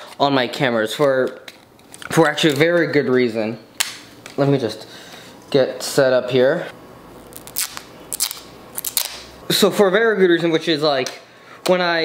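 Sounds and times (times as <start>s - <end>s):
packing tape crackling: 7.2s - 9.3s.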